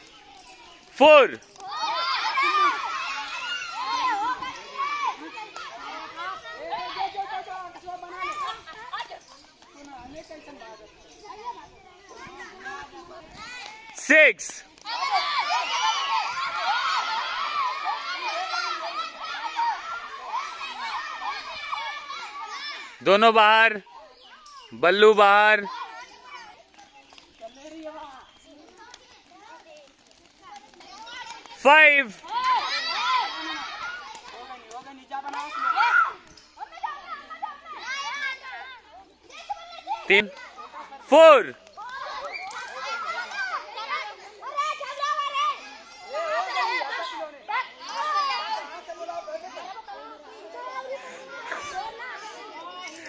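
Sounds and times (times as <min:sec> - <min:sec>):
children calling and chattering: 0:00.0 - 0:53.0.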